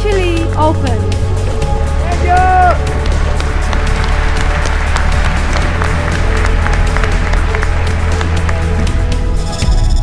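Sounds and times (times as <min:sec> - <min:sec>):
background music with low bass: 0:00.0 - 0:10.0
applause: 0:02.7 - 0:09.4.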